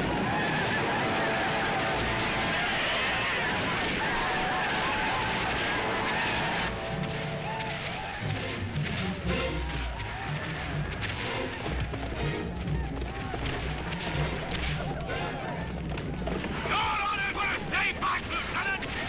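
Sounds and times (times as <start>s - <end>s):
battle noise: 0.0s - 19.0s
film score music: 0.0s - 19.0s.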